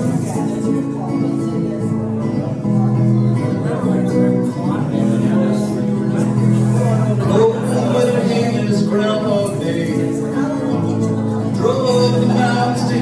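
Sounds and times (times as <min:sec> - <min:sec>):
guitar strumming country chords: 0:00.0 - 0:13.0.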